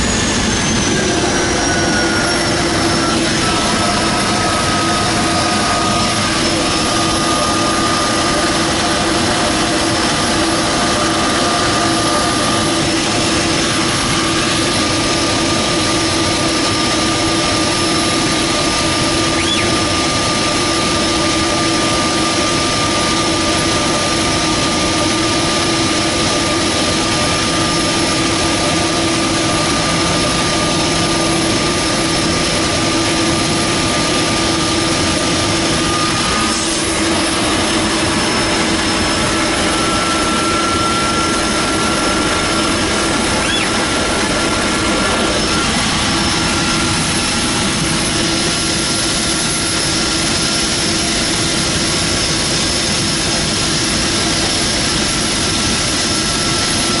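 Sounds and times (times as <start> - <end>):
plane engine and propeller running: 0.0 - 57.0
steady high whine: 0.0 - 57.0.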